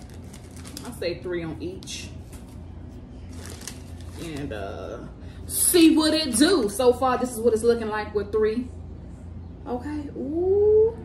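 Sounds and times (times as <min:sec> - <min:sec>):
plastic bag crinkling: 0:00.0 - 0:01.1, 0:02.2 - 0:04.8
faint low hum: 0:00.0 - 0:11.0.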